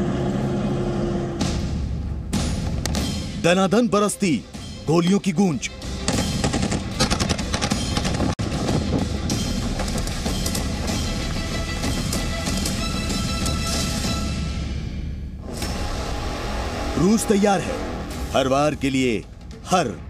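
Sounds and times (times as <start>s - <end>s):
dramatic background music: 0.0s - 20.0s.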